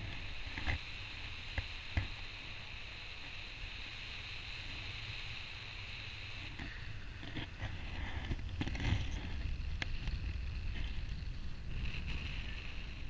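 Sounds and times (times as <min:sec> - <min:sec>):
wind rushing over microphone: 0:06.7 - 0:13.0.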